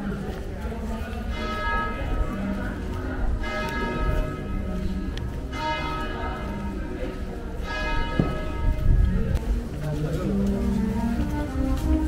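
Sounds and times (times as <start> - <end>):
church bell ringing: 1.3 - 9.2.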